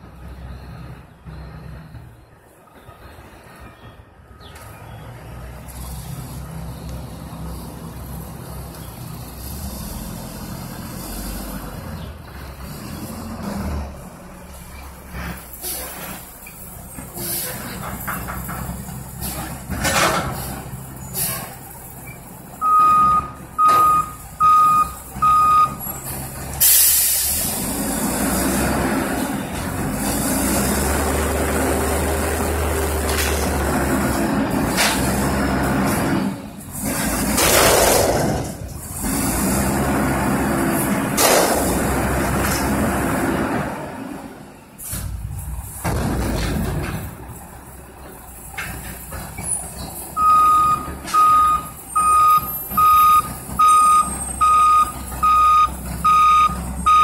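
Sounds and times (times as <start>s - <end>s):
diesel truck engine: 0.0s - 57.0s
reversing beeps: 22.1s - 25.8s, 50.2s - 57.0s
air brake hiss: 26.6s - 27.6s.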